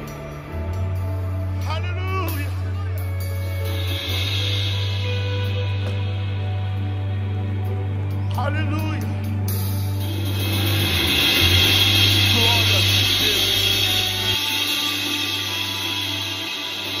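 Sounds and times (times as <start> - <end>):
band holding sustained chords: 0.0 - 17.0
low bass notes: 0.0 - 17.0
cymbals washing: 2.5 - 7.1, 9.5 - 17.0.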